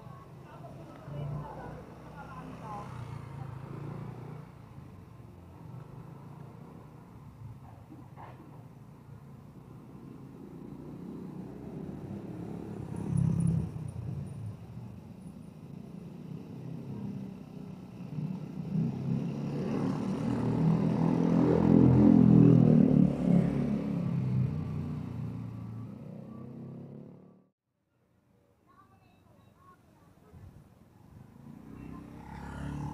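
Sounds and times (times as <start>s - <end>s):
motorcycles passing: 0.0s - 7.6s, 8.4s - 27.4s, 31.1s - 32.9s.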